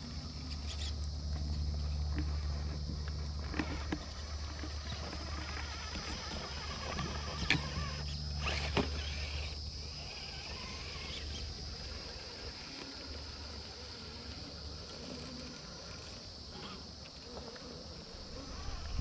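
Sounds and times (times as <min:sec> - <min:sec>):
low steady rumble: 0:00.0 - 0:16.4, 0:18.0 - 0:19.0
insects trilling: 0:00.0 - 0:19.0
toy truck driving over dirt and rock: 0:00.0 - 0:19.0.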